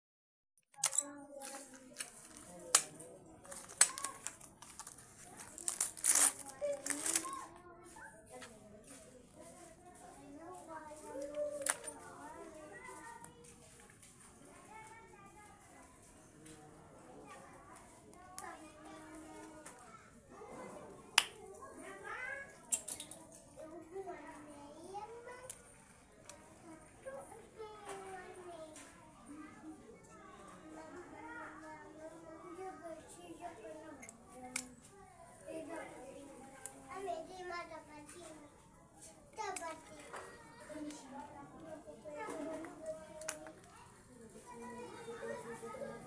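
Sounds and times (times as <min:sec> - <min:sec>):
plastic wrapper crinkling: 0:03.4 - 0:07.4.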